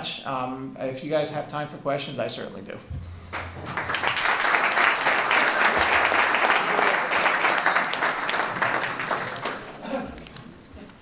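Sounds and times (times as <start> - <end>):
audience applauding: 3.3 - 10.2.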